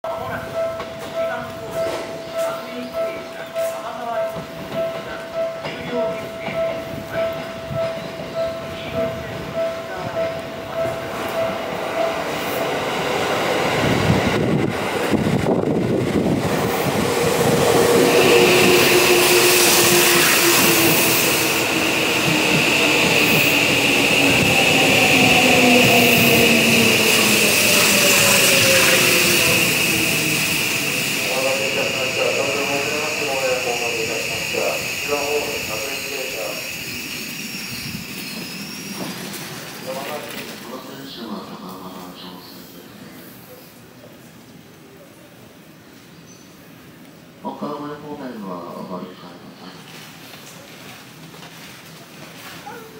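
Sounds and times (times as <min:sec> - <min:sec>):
electric train braking: 0:04.6 - 0:41.2
steady high tone: 0:16.8 - 0:39.0.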